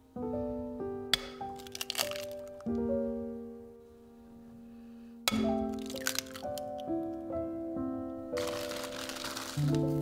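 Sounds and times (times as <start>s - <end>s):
gentle background music: 0.0s - 10.0s
egg shell cracking: 1.2s - 2.7s, 5.3s - 7.2s, 8.4s - 9.8s
shell crackling apart: 1.2s - 2.7s, 5.3s - 7.1s, 8.4s - 9.7s.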